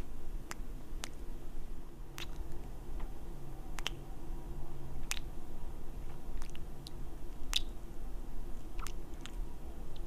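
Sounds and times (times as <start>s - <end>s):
low steady hum: 0.0s - 10.0s
wet lip smacks of kisses: 2.2s - 2.6s, 3.8s - 4.0s, 5.0s - 5.3s, 7.5s - 7.8s.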